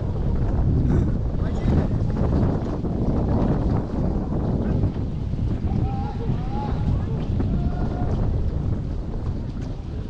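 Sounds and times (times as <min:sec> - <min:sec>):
water splashing along canoe hull: 0:00.0 - 0:10.0
wind buffeting microphone: 0:00.0 - 0:10.0.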